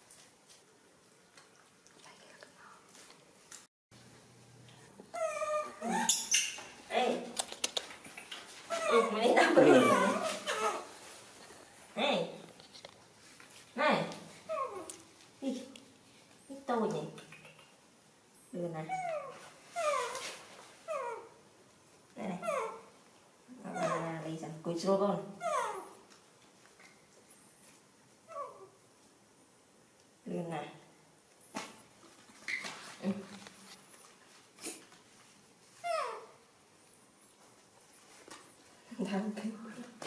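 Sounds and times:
baby macaque crying: 8.7s - 10.9s, 14.5s - 14.9s, 22.4s - 22.9s, 23.6s - 24.1s, 25.4s - 26.0s, 35.8s - 36.4s.

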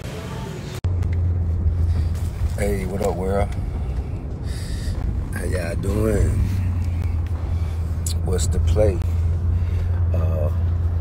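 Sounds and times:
car interior rumble: 0.1s - 11.0s
man talking: 2.6s - 3.6s, 5.3s - 6.7s, 8.0s - 9.1s.

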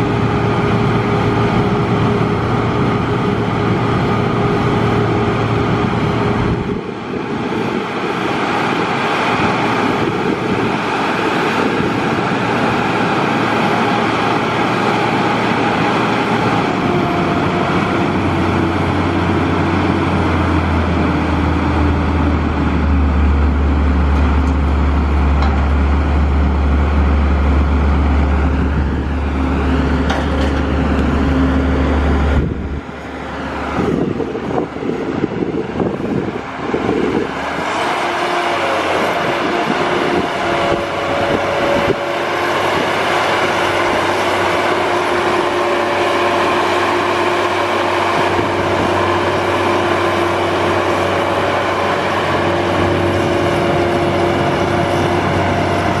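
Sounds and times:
diesel engine droning: 0.0s - 56.0s.

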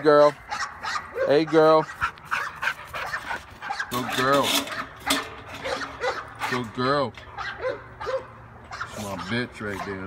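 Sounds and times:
dog panting: 1.5s - 3.9s.

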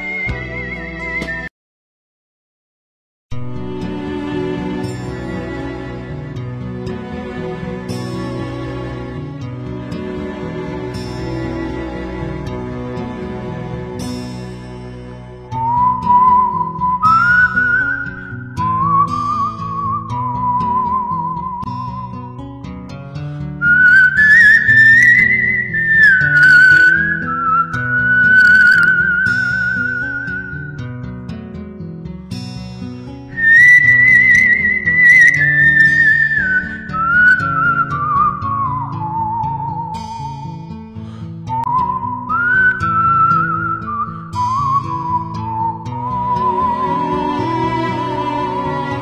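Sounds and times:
whistled melody: 0.0s - 1.5s, 9.8s - 22.4s, 23.6s - 31.1s, 33.3s - 49.0s
soft instrumental backing music: 3.4s - 39.2s, 43.6s - 49.0s.

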